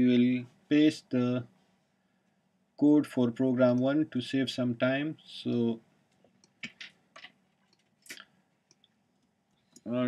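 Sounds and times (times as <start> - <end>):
keyboard and mouse clicks: 6.1 - 9.9.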